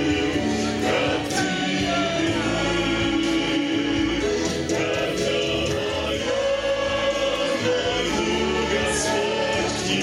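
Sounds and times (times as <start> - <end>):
musical backing: 0.0 - 10.0
vocal group singing: 0.0 - 10.0.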